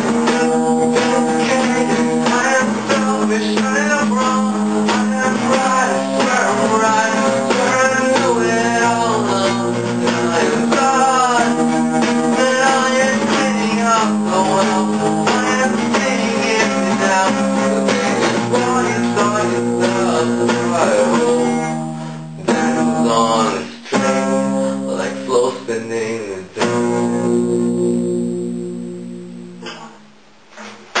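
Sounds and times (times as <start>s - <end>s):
acoustic guitar strumming: 0.0s - 31.0s.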